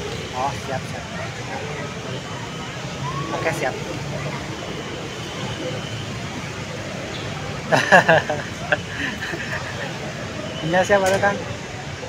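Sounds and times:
faint indistinct crowd voices: 0.0s - 12.0s.

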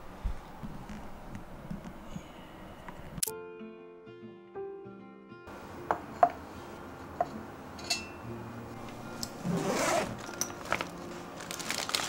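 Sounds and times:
zipper pulled open: 9.4s - 10.8s.

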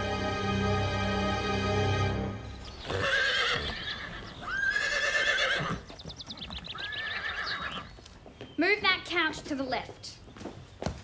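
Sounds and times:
horse whinnying: 2.6s - 7.9s.

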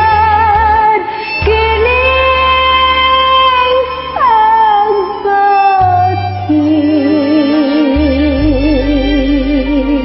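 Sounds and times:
backing track: 0.0s - 10.0s.

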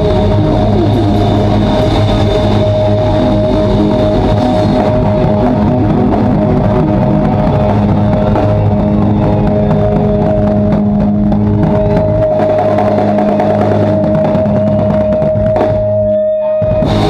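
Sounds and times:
drum and cymbal hits: 0.0s - 17.0s
electric guitars ringing chord: 0.0s - 17.0s.

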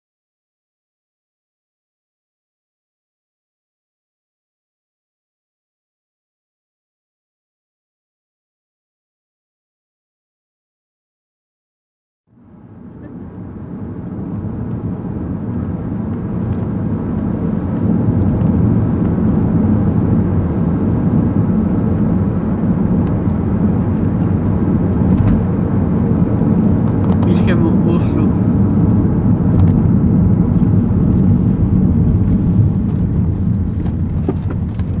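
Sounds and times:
car engine and tyre rumble: 12.3s - 35.0s.

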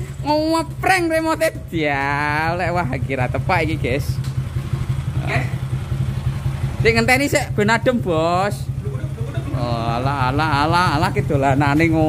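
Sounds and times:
motorcycle engine idling: 0.0s - 12.0s.

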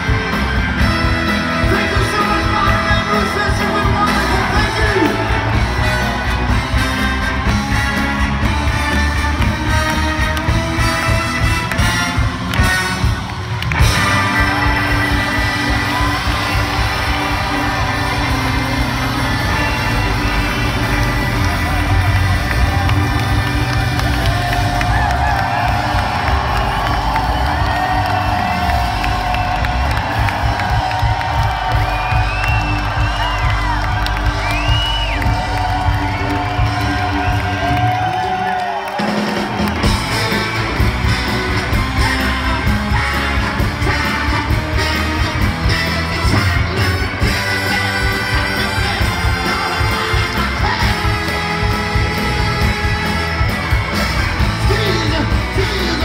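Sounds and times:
crowd cheering and whooping: 0.0s - 56.0s
live soul band playing: 0.0s - 56.0s
baritone saxophone: 39.8s - 55.6s.

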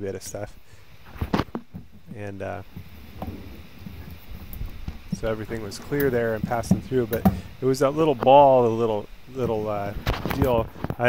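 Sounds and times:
hands knocking and rubbing plastic: 1.1s - 7.5s.

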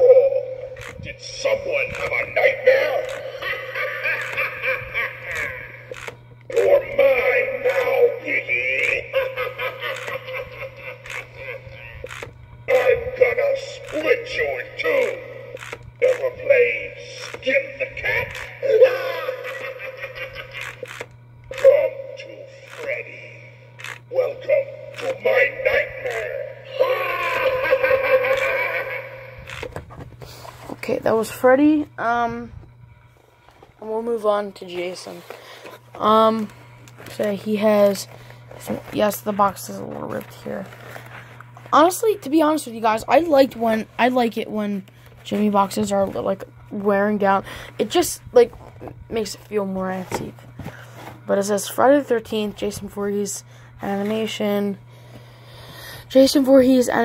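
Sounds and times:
toy speaker evil voice: 0.0s - 20.9s, 21.5s - 23.4s, 24.0s - 29.7s
steady low hum: 0.0s - 57.0s
recorded evil laughter: 2.6s - 5.9s, 8.8s - 12.1s, 18.6s - 20.9s, 25.1s - 29.5s.

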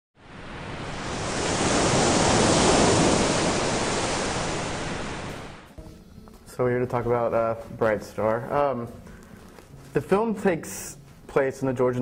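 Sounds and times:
rushing whoosh: 0.2s - 5.8s.

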